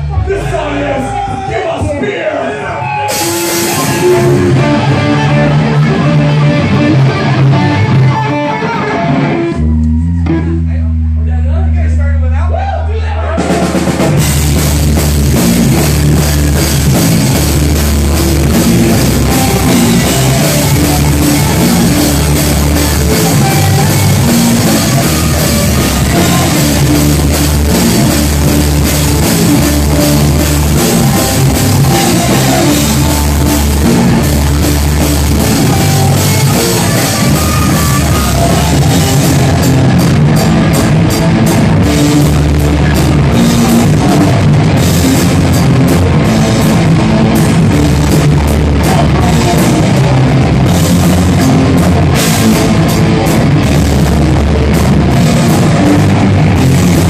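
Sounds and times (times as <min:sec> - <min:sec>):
heavy metal band playing: 0:00.0 - 0:57.0.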